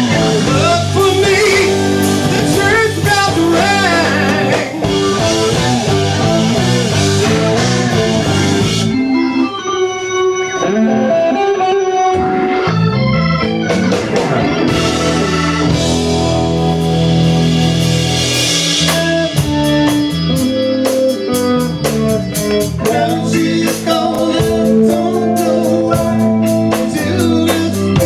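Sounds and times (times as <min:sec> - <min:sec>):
electric guitar: 0:00.0 - 0:28.0
live rock band: 0:00.0 - 0:28.0
organ: 0:00.0 - 0:28.0.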